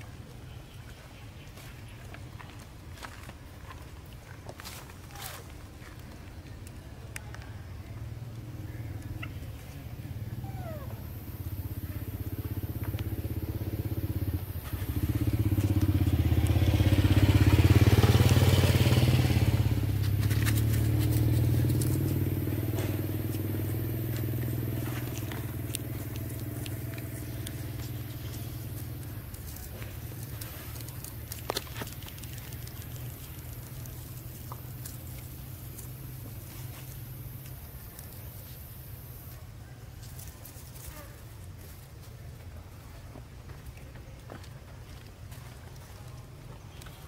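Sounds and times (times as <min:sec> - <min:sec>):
vehicle engine passing by: 0:07.7 - 0:39.4.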